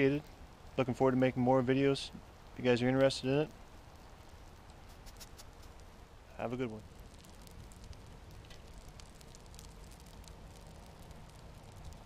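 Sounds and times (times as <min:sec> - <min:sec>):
low hiss of burner: 0:00.0 - 0:12.0
oil burner crackling: 0:00.0 - 0:12.0.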